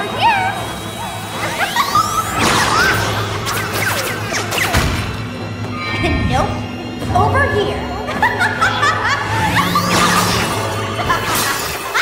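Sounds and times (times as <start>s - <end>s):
dramatic orchestral music: 0.0s - 12.0s
echoing taunting laughter: 1.0s - 3.5s, 8.0s - 12.0s.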